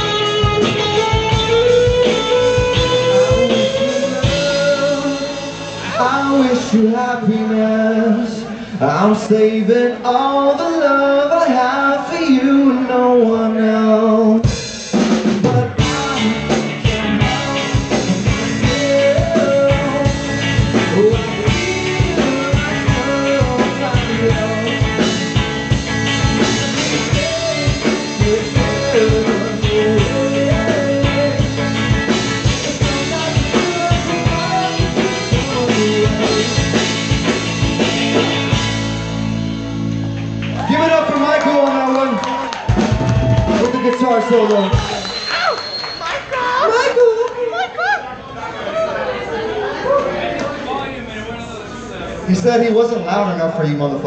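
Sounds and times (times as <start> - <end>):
drum kit beating: 0.0 - 6.9, 14.4 - 45.5
rock band playing: 0.0 - 8.0, 14.1 - 46.3
electric guitars: 0.0 - 9.0, 14.4 - 46.0.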